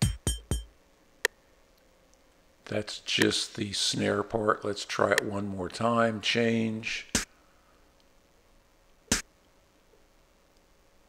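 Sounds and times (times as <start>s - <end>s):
electronic clap-snare hits: 0.0s - 0.7s, 7.1s - 7.3s.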